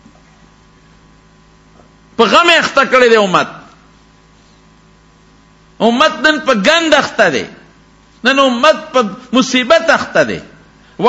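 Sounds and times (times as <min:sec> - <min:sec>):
electrical mains hum: 0:00.0 - 0:11.0
man speaking: 0:02.2 - 0:03.8, 0:05.8 - 0:07.6, 0:08.2 - 0:10.6.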